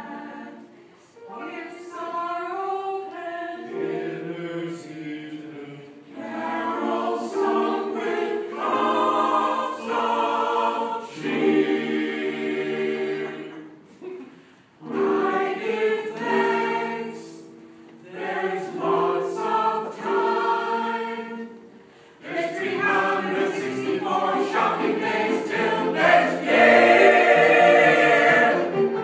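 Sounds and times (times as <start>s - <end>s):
mixed choir singing: 0.0s - 13.9s, 14.8s - 29.0s.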